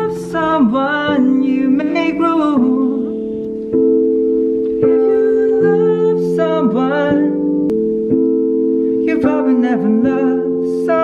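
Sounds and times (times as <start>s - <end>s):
person singing over chords: 0.0s - 11.0s.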